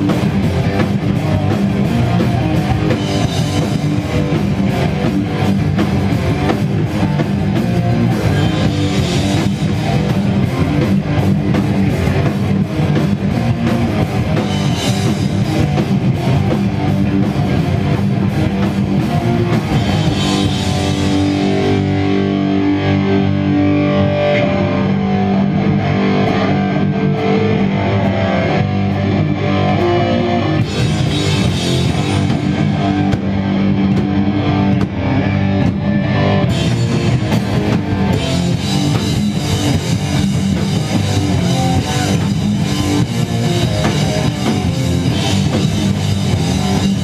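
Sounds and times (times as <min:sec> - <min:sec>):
punk band playing live: 0:00.0 - 0:47.0.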